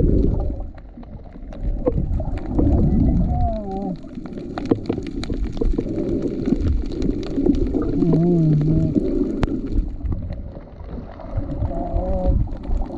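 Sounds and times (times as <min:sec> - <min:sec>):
sharp underwater clicks: 0:00.0 - 0:12.9
underwater rumble of moving water: 0:00.0 - 0:12.9.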